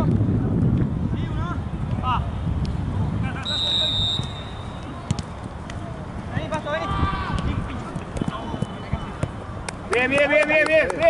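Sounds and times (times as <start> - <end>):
wind on microphone: 0.0 - 3.4
high whistle: 3.4 - 4.9.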